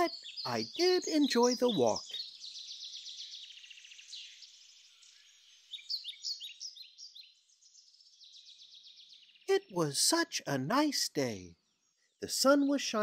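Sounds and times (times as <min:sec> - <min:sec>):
bird trilling: 0:00.0 - 0:02.4
high downward-sliding bird chirps: 0:00.0 - 0:11.4.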